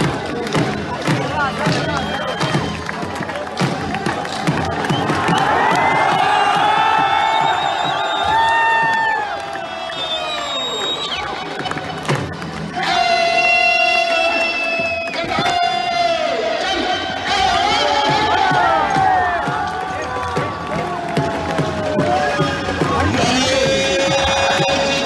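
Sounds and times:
crowd cheering: 0:00.0 - 0:25.0.

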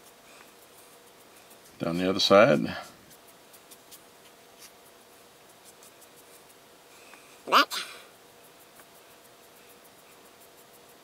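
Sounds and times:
foam brush strokes on wood: 0:00.0 - 0:07.4, 0:08.1 - 0:11.0.

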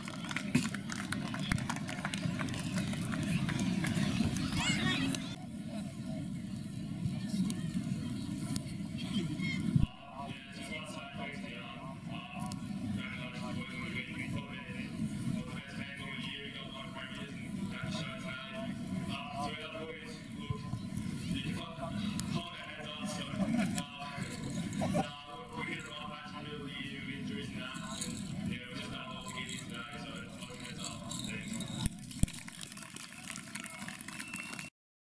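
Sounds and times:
man speaking over loudspeaker: 0:09.9 - 0:32.0.

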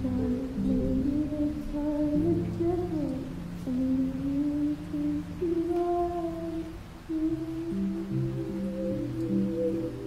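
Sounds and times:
woman singing with reverb: 0:00.0 - 0:10.0.

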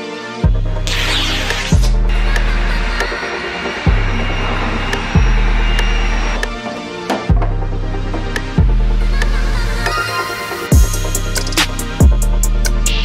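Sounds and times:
electronic music with deep bass: 0:00.0 - 0:13.0.

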